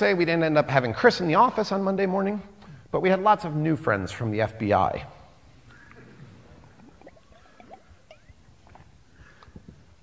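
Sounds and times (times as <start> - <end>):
man gulping from a bottle: 5.9 - 9.6.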